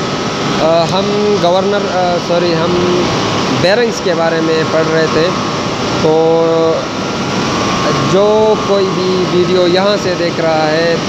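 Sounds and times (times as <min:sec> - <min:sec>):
faint steady whine: 0:00.0 - 0:11.0
turbine running noise: 0:00.0 - 0:11.0.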